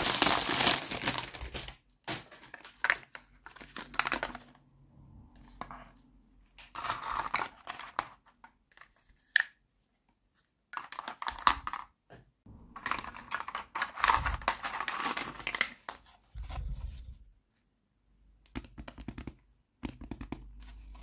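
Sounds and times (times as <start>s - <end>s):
plastic toys rattling and knocking: 10.7s - 16.4s.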